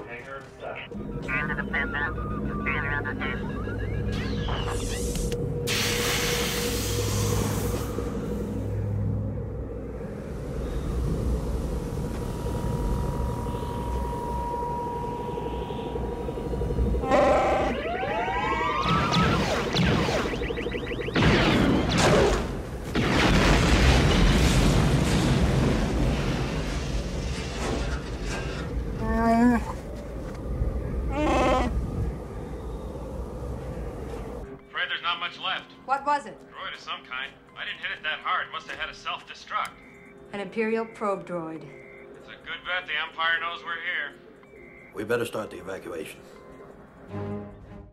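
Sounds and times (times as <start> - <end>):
electronic tone and whistles: 1.0 - 8.0, 12.4 - 21.9, 44.5 - 45.0
growling cries: 17.0 - 17.8, 31.0 - 32.0
blaster fire: 17.7 - 28.4
loud explosion: 21.1 - 27.9
wind: 21.5 - 34.6
orchestral music: 45.8 - 47.9.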